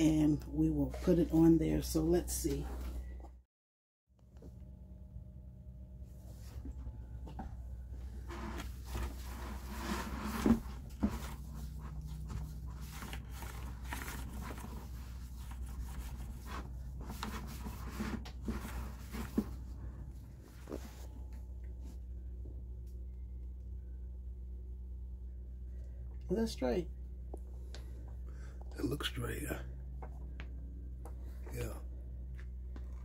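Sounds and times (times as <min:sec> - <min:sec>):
low hum: 0:04.2 - 0:33.0
paper towel rubbing plastic bucket: 0:08.1 - 0:20.0.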